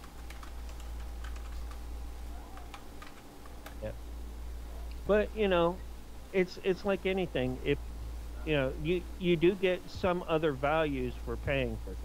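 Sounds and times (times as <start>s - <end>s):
computer keyboard typing: 0.0s - 1.9s, 2.5s - 3.8s
steady low hum: 0.0s - 12.0s.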